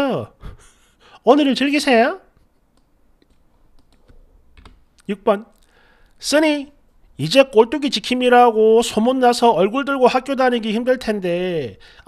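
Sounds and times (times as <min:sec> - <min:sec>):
computer keyboard clicking: 0:02.7 - 0:04.8.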